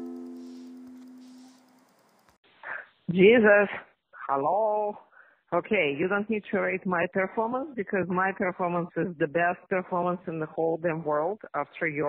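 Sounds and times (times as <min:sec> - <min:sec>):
guitar chord ringing out: 0:00.0 - 0:01.6.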